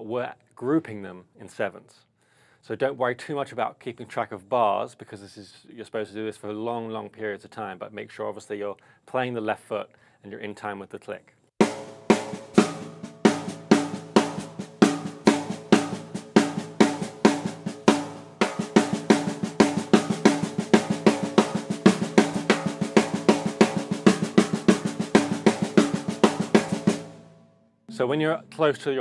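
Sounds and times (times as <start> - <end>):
hi-hat pedal: 11.6 - 27.1
snare drum ghost notes and rim-shots: 11.6 - 29.0.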